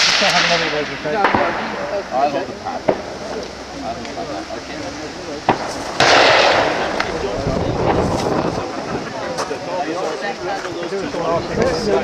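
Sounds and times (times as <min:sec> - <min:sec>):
rifle shot: 0:00.0 - 0:01.9, 0:05.5 - 0:07.2
sharp faint cracks: 0:05.4 - 0:08.4.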